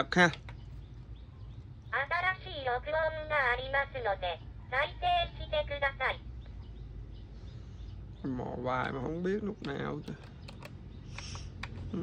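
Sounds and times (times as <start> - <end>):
low steady hum: 0.0 - 12.0
recorded woman's voice prompt: 1.9 - 6.3.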